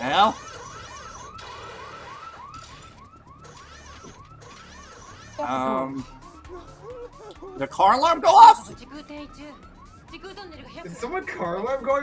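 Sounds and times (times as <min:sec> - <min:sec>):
car alarm chirping: 0:00.2 - 0:12.0.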